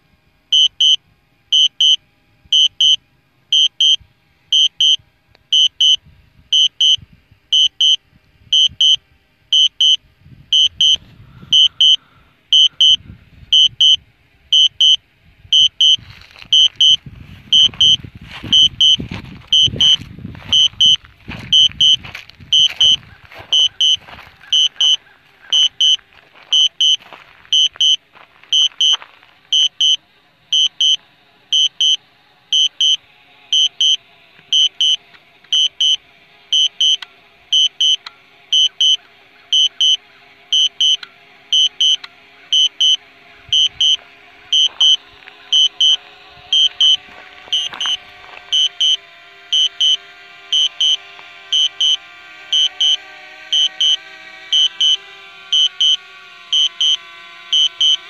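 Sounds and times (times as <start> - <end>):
drone propeller hum: 0.0 - 58.0
high warning beeps: 0.5 - 58.0.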